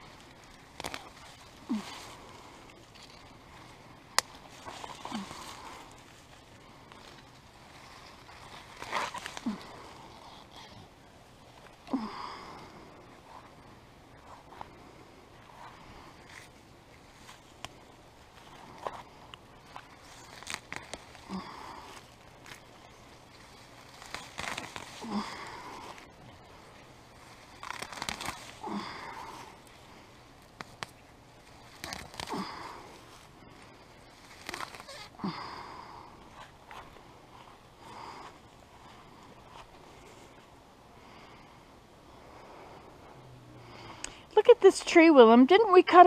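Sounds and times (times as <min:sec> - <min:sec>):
weeds pulled from soil: 0:00.0 - 0:10.7, 0:14.2 - 0:40.4.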